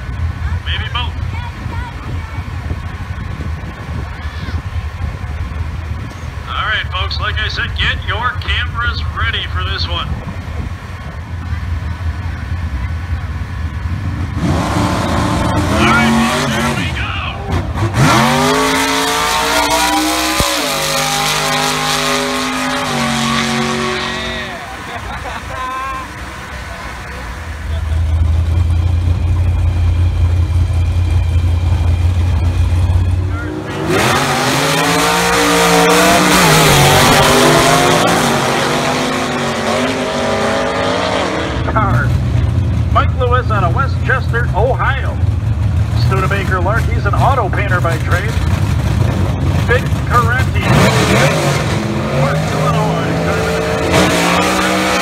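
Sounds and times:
engine idling: 0.0s - 14.4s, 24.4s - 33.6s, 41.7s - 50.6s
drag car engines revving: 0.0s - 55.0s.

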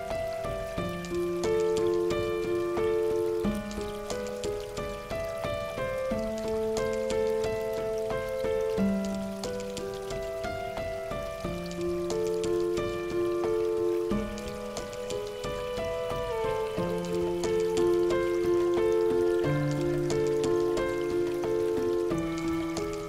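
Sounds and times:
calm music of held chords: 0.0s - 23.0s
water drops pattering: 0.0s - 23.0s.

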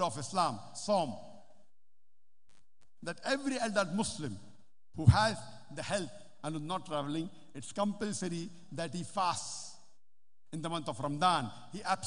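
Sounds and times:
man speaking: 3.0s - 9.8s, 10.5s - 12.0s.

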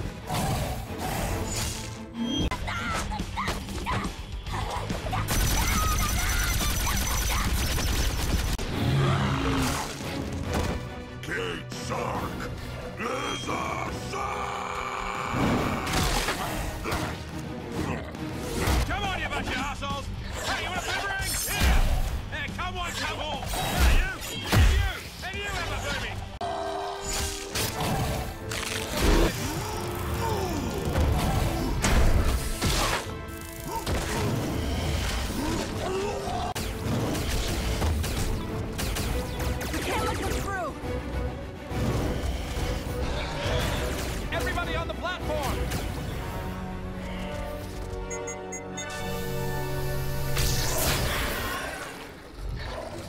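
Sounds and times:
dramatic orchestral score: 0.0s - 53.0s.

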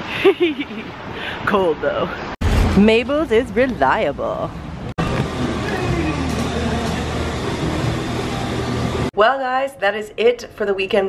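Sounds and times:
steady low hum: 3.6s - 9.1s.

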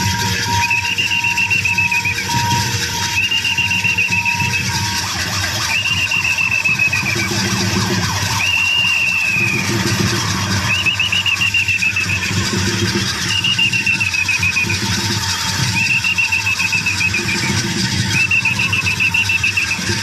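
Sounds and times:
quick low beat: 0.0s - 20.0s
shrill whistle-like calls: 0.0s - 20.0s.

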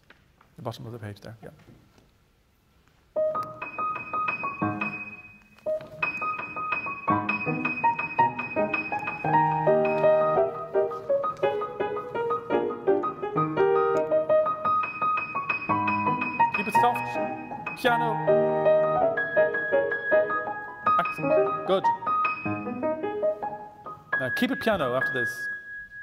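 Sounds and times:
grand piano fast passage: 3.2s - 5.2s, 5.9s - 25.6s.

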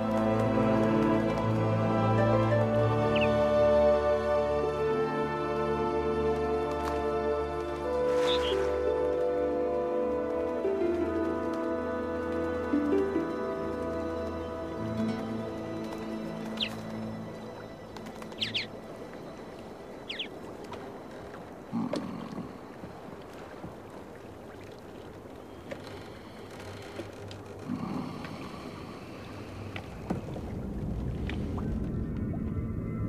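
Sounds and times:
soft ambient music: 0.0s - 33.0s
low rumble: 27.7s - 33.0s.

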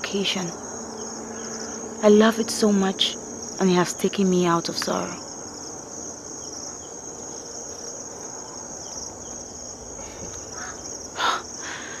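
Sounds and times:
faint background hiss: 0.0s - 12.0s
insects chirring: 0.0s - 12.0s.

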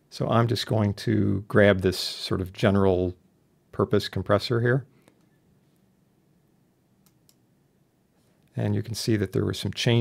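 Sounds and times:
computer mouse clicks: 7.0s - 7.4s.

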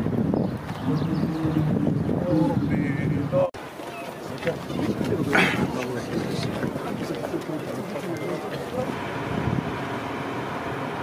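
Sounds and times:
wind buffeting microphone: 0.0s - 10.0s
people talking indistinctly: 1.1s - 9.0s.

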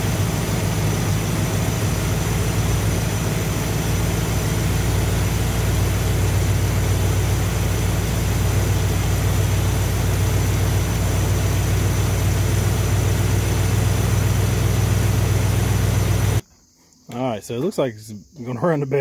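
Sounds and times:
car engine idling: 0.0s - 16.4s.

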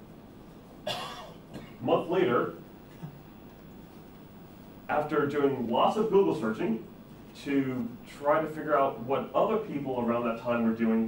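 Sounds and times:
cough: 0.8s - 1.8s.

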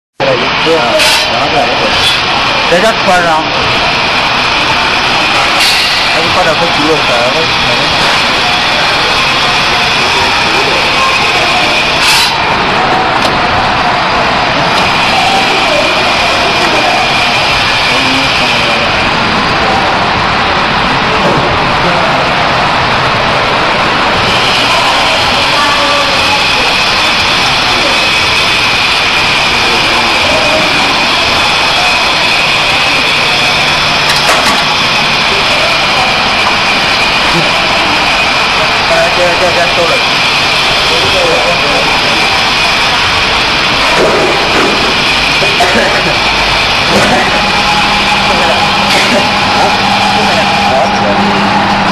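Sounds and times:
machine whirring with high whine: 0.2s - 51.9s.

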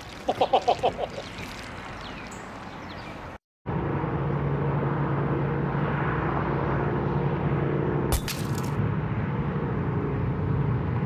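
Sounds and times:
car driving at speed: 3.7s - 8.1s, 8.7s - 11.0s.

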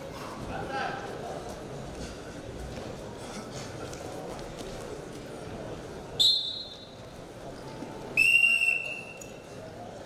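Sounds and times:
referee whistle blast: 8.2s - 9.2s.

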